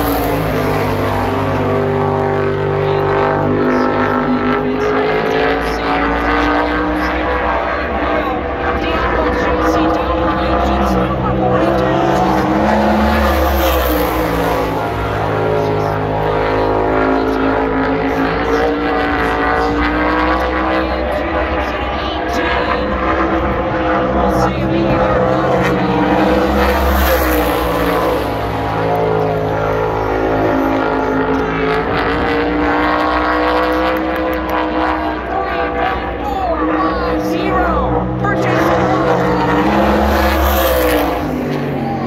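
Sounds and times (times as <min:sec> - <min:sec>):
race car engine at speed: 0:00.0 - 0:42.0.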